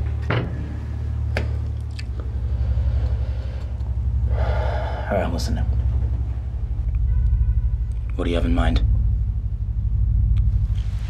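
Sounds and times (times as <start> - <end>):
low steady hum: 0.0 - 11.0
person taking sharp breath: 2.3 - 5.1.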